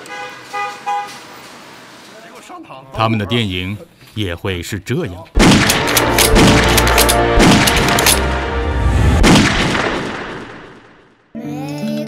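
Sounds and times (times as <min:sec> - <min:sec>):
vehicle horn tooting: 0:00.0 - 0:01.2.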